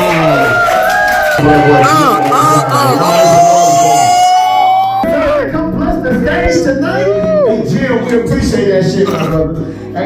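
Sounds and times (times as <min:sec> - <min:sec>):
person's long rising cry: 0:01.7 - 0:05.0.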